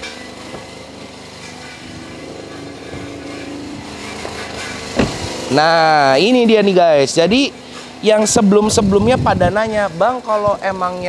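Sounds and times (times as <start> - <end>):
small engine humming: 0.0 - 11.0
car door knocks: 4.2 - 5.3.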